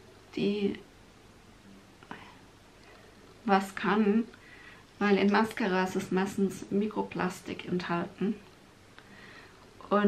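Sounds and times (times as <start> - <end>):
faint breath: 4.4 - 4.9, 9.0 - 9.7.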